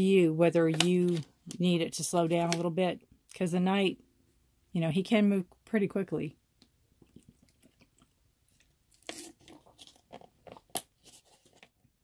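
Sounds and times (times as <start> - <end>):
crunching rustling handling noises: 0.6 - 1.6, 7.4 - 11.7.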